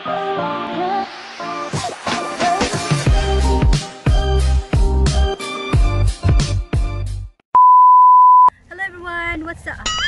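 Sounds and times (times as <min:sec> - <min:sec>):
music: 0:00.0 - 0:07.4.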